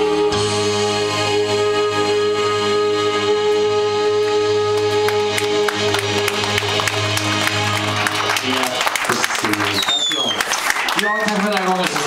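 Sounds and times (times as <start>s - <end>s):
backing track: 0.0s - 12.0s
scattered clapping: 4.8s - 12.0s.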